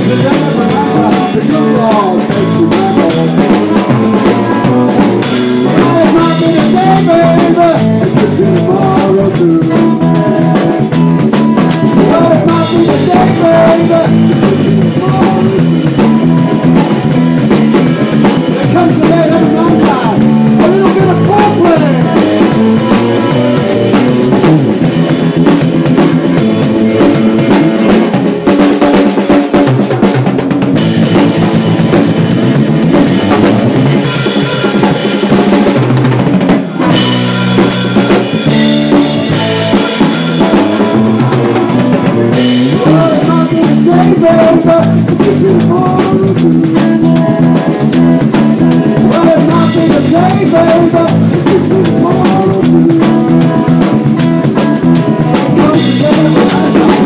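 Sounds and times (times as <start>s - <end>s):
bass guitar: 0.0s - 57.0s
drum kit: 0.0s - 57.0s
electric guitar: 0.0s - 57.0s.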